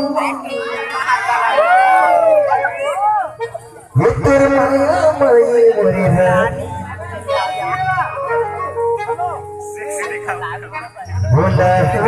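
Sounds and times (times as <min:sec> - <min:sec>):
electronic keyboard melody: 0:00.0 - 0:12.0
person singing: 0:04.0 - 0:09.0, 0:11.1 - 0:12.0.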